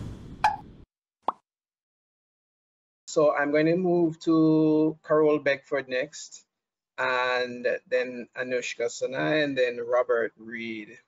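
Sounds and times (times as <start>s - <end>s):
whoosh: 0.0s - 0.9s.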